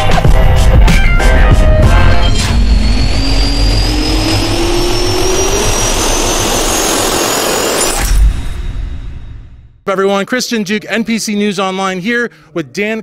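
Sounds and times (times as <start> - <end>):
jet engine spooling up: 1.2 - 9.6.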